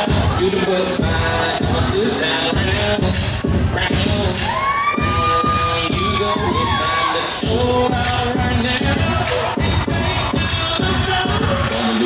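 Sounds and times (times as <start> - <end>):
pop music over sound system: 0.0 - 12.0.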